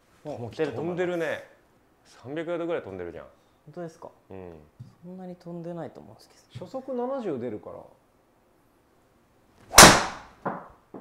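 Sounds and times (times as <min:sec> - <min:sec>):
golf driver striking ball: 0:09.7 - 0:10.3.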